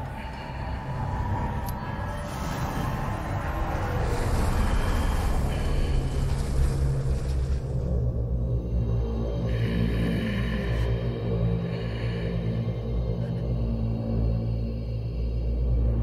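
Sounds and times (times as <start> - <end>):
deep continuous rumble: 0.0 - 16.0.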